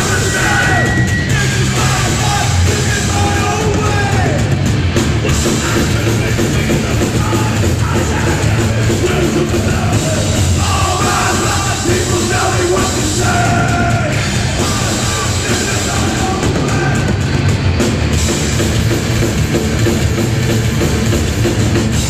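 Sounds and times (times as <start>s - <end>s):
yelled vocals: 0.0s - 18.6s
punk band playing: 0.0s - 22.0s.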